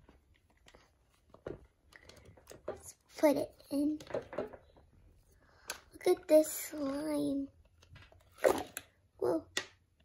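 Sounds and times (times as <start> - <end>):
handling plastic bucket: 7.8 - 9.0.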